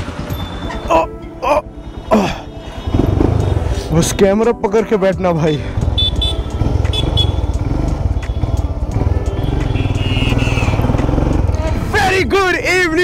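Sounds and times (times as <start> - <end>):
motorcycle engine: 0.0 - 13.0.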